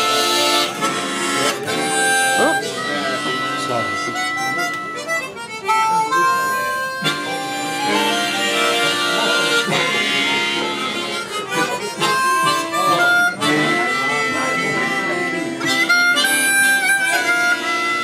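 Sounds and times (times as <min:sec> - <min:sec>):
harmonicas playing: 0:00.0 - 0:18.0.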